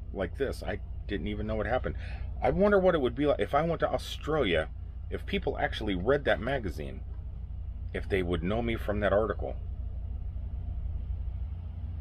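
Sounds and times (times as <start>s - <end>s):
low rumble with faint hum: 0.0s - 12.0s.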